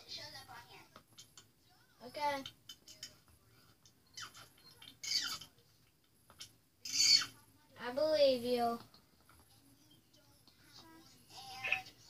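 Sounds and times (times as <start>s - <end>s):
high-pitched squeaky voice: 4.1s - 5.5s, 6.8s - 7.4s.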